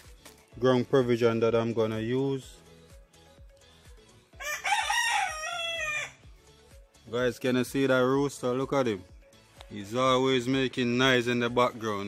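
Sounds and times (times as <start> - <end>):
rooster crowing: 4.4 - 6.2.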